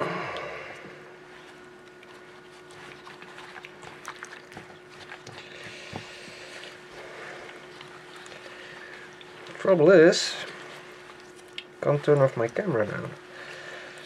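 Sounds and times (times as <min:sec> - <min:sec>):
wet fabric squishing and sloshing: 0:01.2 - 0:14.0.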